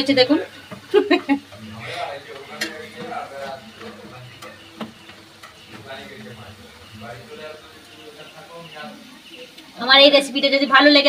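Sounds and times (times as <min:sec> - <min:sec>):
sweets sizzling in oil: 0:00.0 - 0:11.0
metal stick stirring in pan: 0:00.5 - 0:08.4
stick clicking on pan: 0:02.3 - 0:06.6.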